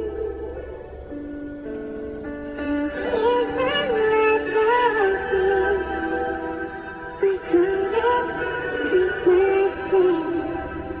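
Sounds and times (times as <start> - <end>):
person singing slow melody: 0.0 - 11.0.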